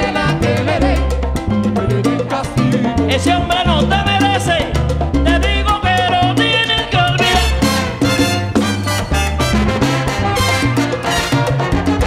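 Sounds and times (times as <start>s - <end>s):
salsa band playing: 0.0s - 12.0s.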